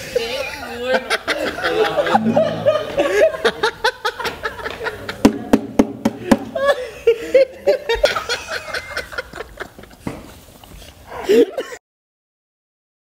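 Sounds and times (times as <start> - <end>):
people laughing: 0.0 - 5.2, 6.6 - 9.8.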